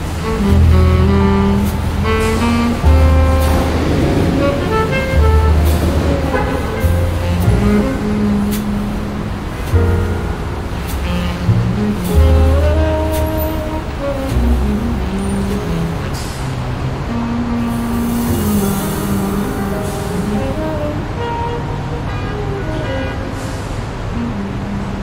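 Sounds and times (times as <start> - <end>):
city traffic: 0.0 - 25.0
smooth jazz: 0.0 - 25.0.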